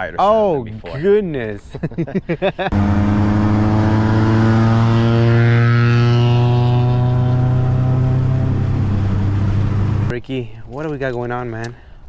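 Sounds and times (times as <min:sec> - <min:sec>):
car engine droning exhaust: 0:02.7 - 0:10.1.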